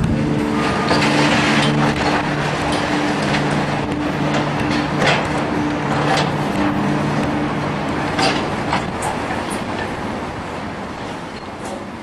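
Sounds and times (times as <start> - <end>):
diesel machinery running: 0.0 - 12.0.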